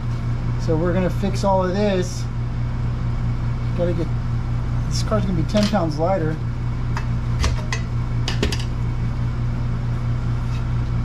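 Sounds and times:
low mechanical hum: 0:00.0 - 0:11.0
metal parts clinking on workbench: 0:05.5 - 0:05.8.

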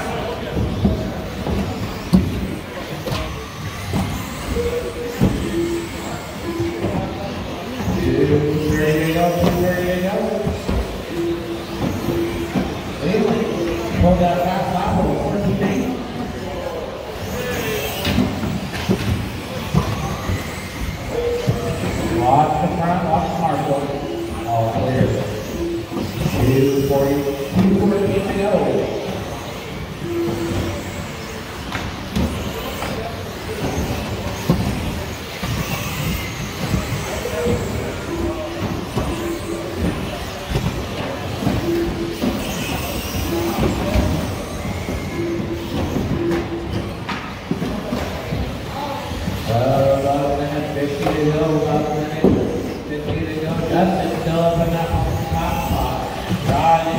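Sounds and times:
rc cars racing: 0:00.0 - 0:56.9.

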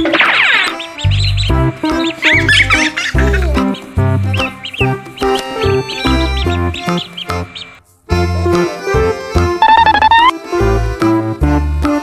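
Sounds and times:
background music with bass line: 0:00.1 - 0:12.0
chicks peeping: 0:00.2 - 0:07.8.

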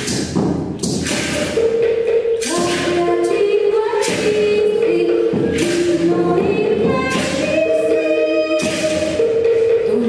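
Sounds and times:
percussion strikes: 0:00.0 - 0:10.0.

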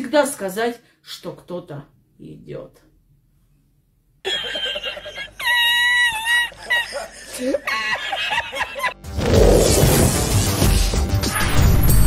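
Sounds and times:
man laughing in high squeals: 0:04.3 - 0:09.0.

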